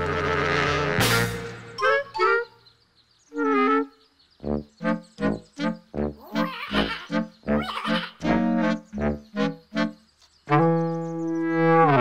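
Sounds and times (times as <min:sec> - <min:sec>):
cartoon frog laughing: 0:06.2 - 0:08.5.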